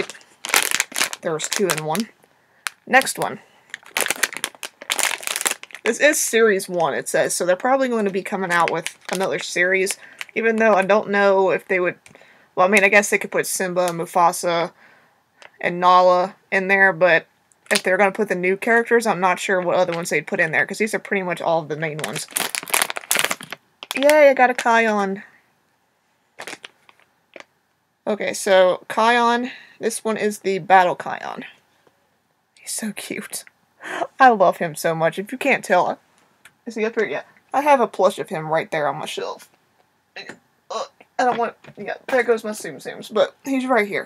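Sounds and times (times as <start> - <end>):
plastic bag crinkling: 0.0 - 11.0, 21.9 - 24.8, 26.4 - 27.5.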